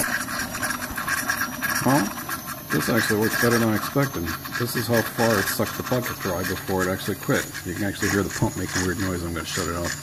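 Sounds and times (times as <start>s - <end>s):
fuel pump sucking air: 0.0s - 10.0s.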